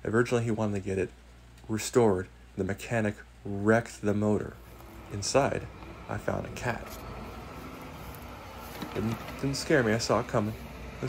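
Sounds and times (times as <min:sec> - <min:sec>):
low background rumble and hum: 0:00.0 - 0:11.0
person speaking: 0:02.6 - 0:11.0.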